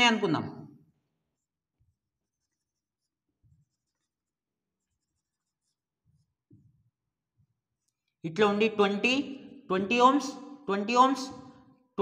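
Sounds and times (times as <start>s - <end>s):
marker pen on whiteboard: 0.9s - 8.2s.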